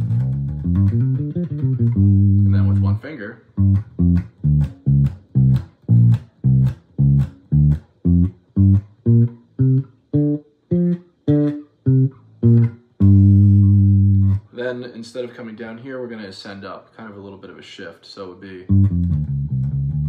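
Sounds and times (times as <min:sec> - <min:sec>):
electric bass plucked notes: 0:00.0 - 0:14.5, 0:18.7 - 0:20.0.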